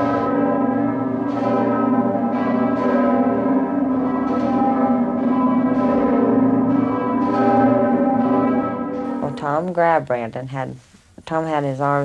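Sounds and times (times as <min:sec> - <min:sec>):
bells ringing: 0:00.0 - 0:09.6.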